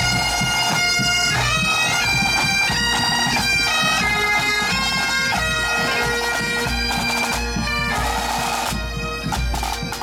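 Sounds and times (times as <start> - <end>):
bagpipes playing a melody: 0.0 - 10.0
drum beats: 0.0 - 10.0.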